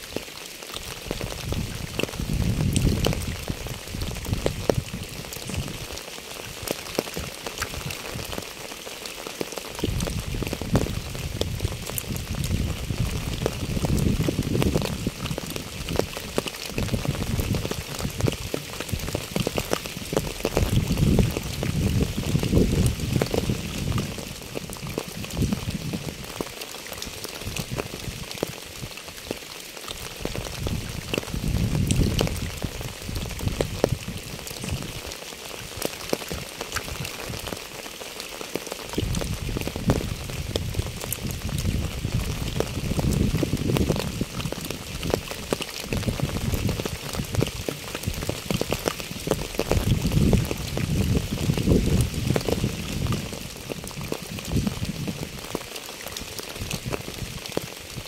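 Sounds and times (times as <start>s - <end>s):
rain patter and splashes: 0.0s - 58.0s.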